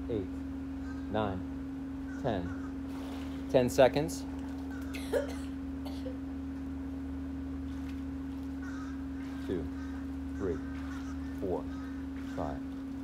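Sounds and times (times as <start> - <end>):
steady hum: 0.0 - 13.0.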